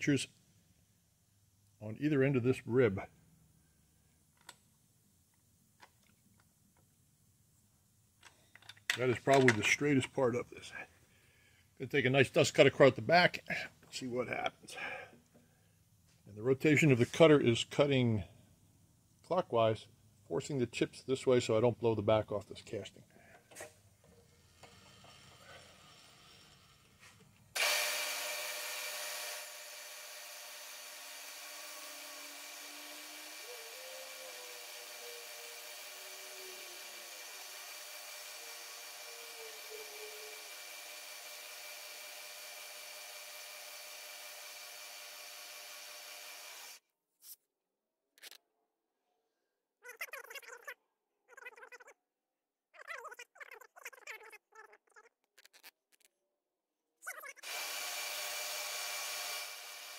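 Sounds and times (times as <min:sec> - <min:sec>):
end mill cutting metal: 0:24.0 - 0:46.8, 0:57.4 - 0:59.9
milling machine spindle whine: 0:27.6 - 0:46.8, 0:57.4 - 0:59.9.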